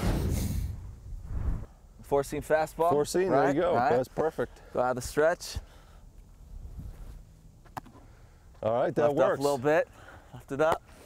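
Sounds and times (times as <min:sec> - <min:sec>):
faint low outdoor rumble: 0:00.0 - 0:11.0.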